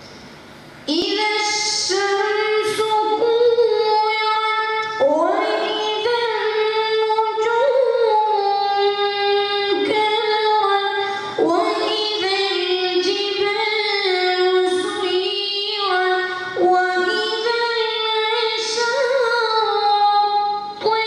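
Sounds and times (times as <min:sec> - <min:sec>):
person reciting in melodic chant: 0:00.9 - 0:21.0.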